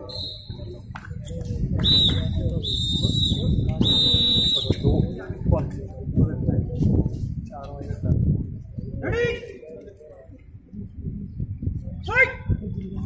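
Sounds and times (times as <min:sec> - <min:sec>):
whistle blasts: 0:00.0 - 0:00.8, 0:01.8 - 0:05.1
low crowd chatter: 0:00.0 - 0:13.0.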